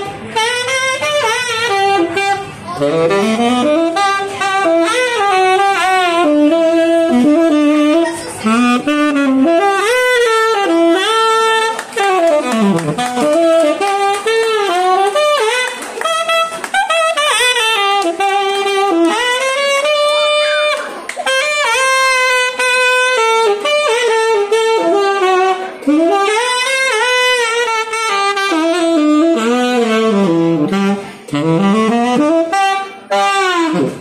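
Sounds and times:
tenor saxophone jazz solo: 0.0 - 34.0.

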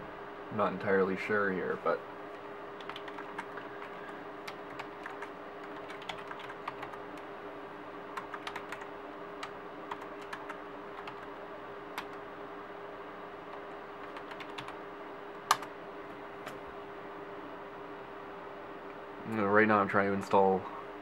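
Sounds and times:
steady hum: 0.0 - 21.0
keyboard typing: 2.8 - 7.0, 8.2 - 11.3, 13.5 - 14.8.

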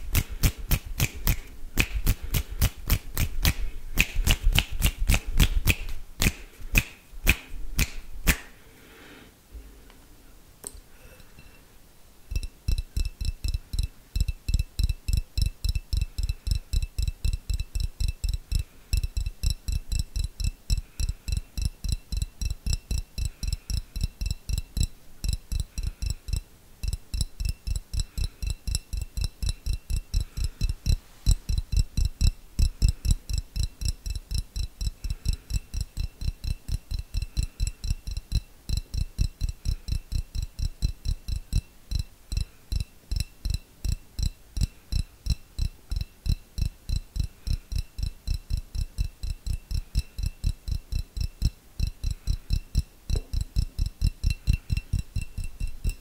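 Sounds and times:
fingertips tapping on glass jar: 12.3 - 56.0.

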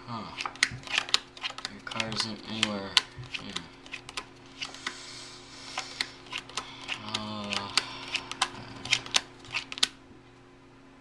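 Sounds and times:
faint steady hum: 0.0 - 11.0
playing cards snapping: 0.4 - 5.0, 5.7 - 10.0.

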